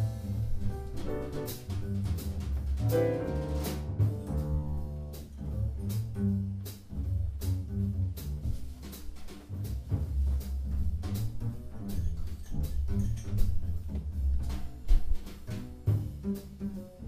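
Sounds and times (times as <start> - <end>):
grand piano: 0.0 - 6.1
drum kit and cymbals: 0.0 - 17.0
walking upright bass: 0.0 - 17.0.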